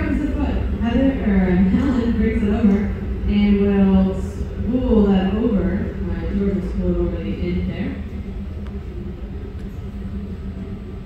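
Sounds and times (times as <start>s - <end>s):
furnace burning rumble: 0.0s - 11.0s.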